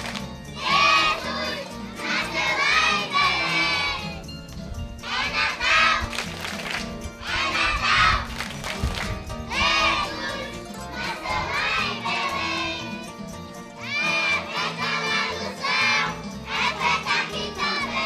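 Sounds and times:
children shouting and cheering: 0.0s - 4.3s, 5.0s - 18.0s.

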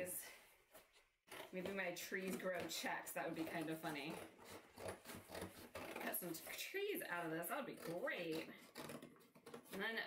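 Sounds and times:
scissors snipping cardboard: 1.3s - 6.6s, 7.2s - 10.0s.

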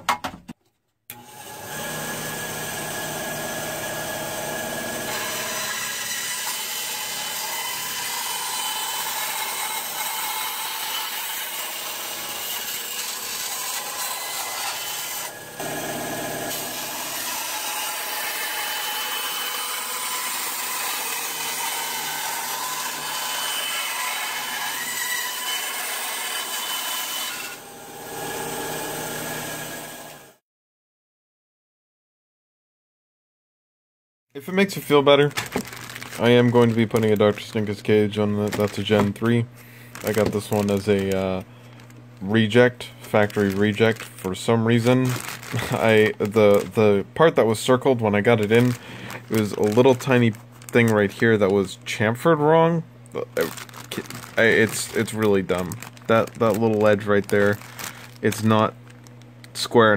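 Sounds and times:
bandsaw cutting plastic: 1.1s - 30.4s, 34.7s - 51.8s, 53.1s - 59.9s.

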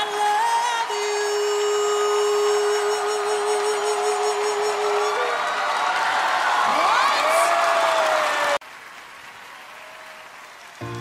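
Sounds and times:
person singing a long note: 0.0s - 5.4s.

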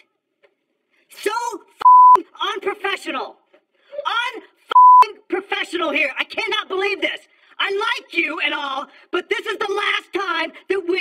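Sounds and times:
censor bleeps: 1.8s - 2.2s, 4.8s - 5.1s.

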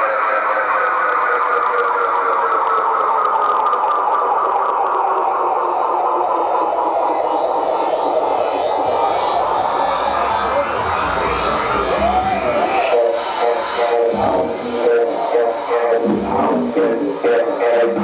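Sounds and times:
electronic dance music: 0.0s - 18.0s
siren-like synth gliding down: 0.0s - 18.0s
deep bass: 6.0s - 18.0s.

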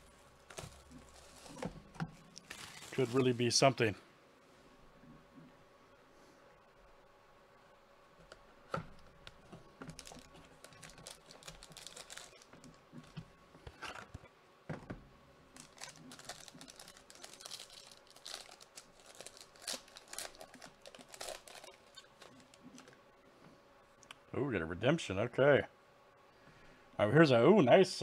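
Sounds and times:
foil wrapper crinkling: 0.0s - 3.5s, 9.0s - 13.2s, 15.5s - 23.0s.

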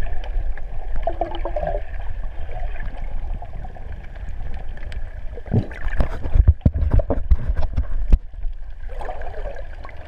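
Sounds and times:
underwater knocks and clicks: 4.0s - 8.6s
low underwater thumps: 5.4s - 8.3s.

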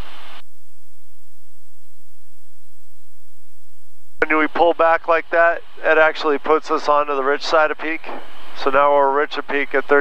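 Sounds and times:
propeller aircraft engine drone: 4.2s - 10.0s.

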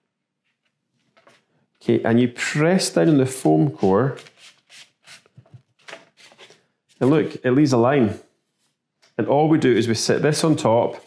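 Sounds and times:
hands rubbing foam board: 9.6s - 11.0s.

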